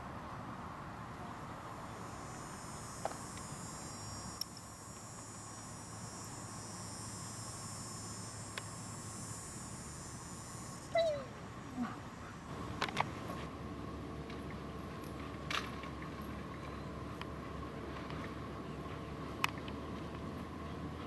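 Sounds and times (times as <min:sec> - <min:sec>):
high-pitched insect chorus: 0:01.6 - 0:13.1.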